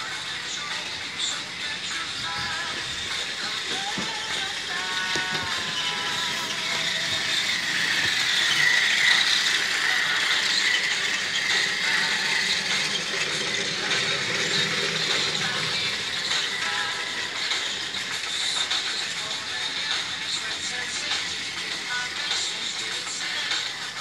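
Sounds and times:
toy train motor whirring: 0.0s - 24.0s.

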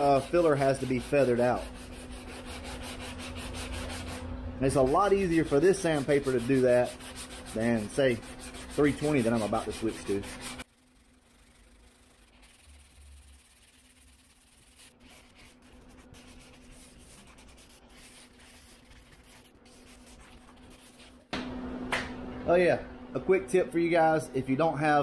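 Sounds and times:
sanding block scraping: 0.0s - 21.2s
steady low hum: 0.0s - 25.0s.

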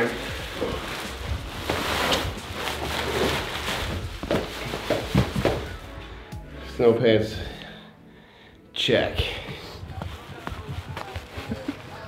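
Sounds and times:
plastic bags rustling and crinkling: 0.0s - 6.0s, 9.9s - 12.0s
low background music bass: 0.0s - 12.0s.

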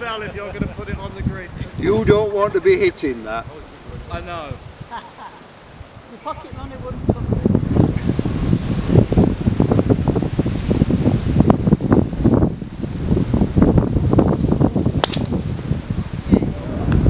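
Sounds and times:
wind buffeting microphone: 0.0s - 17.0s
golf club striking ball: 15.0s - 15.4s.

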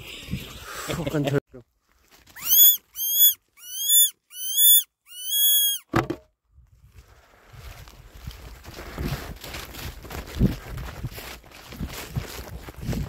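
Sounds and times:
fox call squeals: 2.4s - 5.9s.

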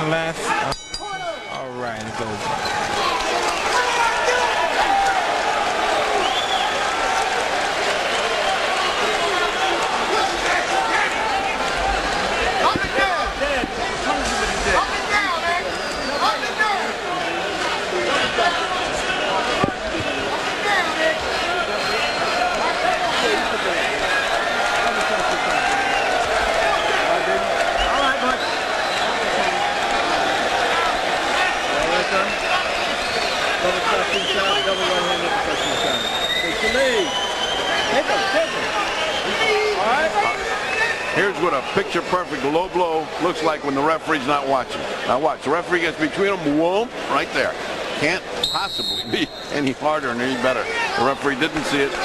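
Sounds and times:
crowd talking and shouting: 0.0s - 52.0s.

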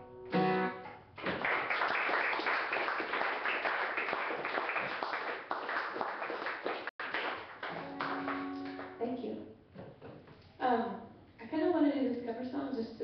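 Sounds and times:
audience applause: 1.2s - 9.0s.

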